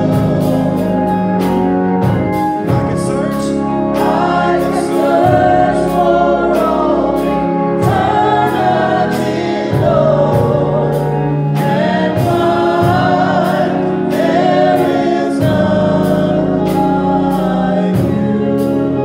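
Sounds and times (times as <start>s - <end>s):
electronic organ chords: 0.0s - 19.0s
man singing gospel: 0.0s - 19.0s.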